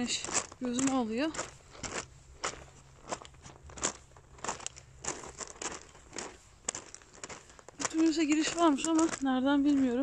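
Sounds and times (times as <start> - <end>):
footsteps crunching on gravel: 0.0 - 10.0.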